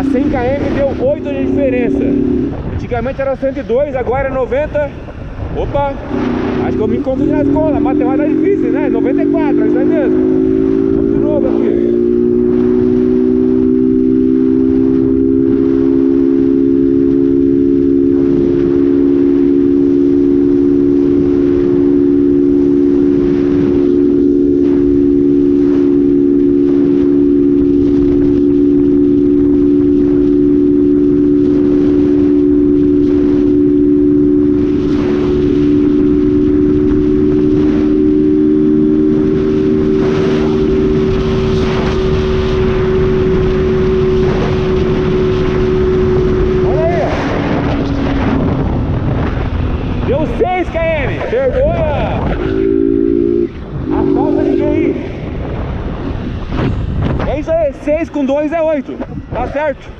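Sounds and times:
motorcycle engine running: 0:00.0 - 0:58.0
wind rushing across microphone: 0:00.0 - 0:59.9.

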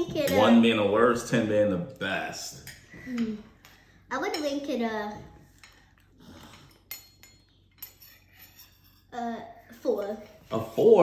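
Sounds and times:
tableware clinking: 0:00.2 - 0:00.7, 0:05.6 - 0:09.2.

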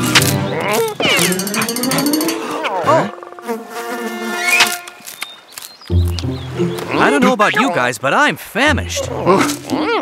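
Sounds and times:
cartoon insect buzzing: 0:01.2 - 0:05.0.

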